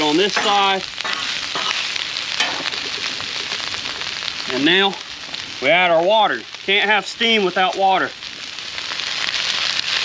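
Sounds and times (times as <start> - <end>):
vegetables sizzling on griddle: 0.0 - 10.0.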